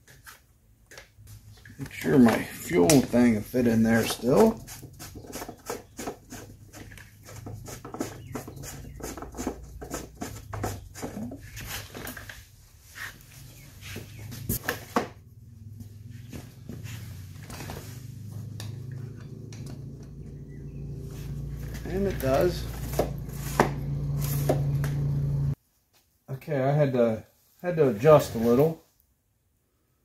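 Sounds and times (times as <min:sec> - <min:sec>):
low hum: 0:15.4 - 0:25.6.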